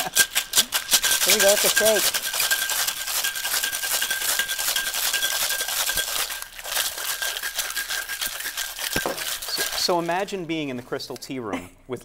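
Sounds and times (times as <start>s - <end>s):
ice rattling in cocktail shaker: 0.0s - 10.7s.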